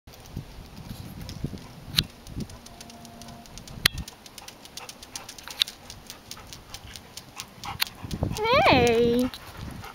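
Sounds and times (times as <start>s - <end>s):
dog claws clicking on pavement: 0.1s - 9.9s.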